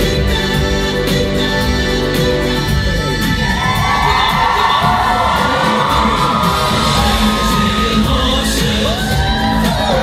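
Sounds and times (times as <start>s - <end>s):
loud music over sound system: 0.0s - 10.0s
audience cheering and whooping: 3.2s - 10.0s.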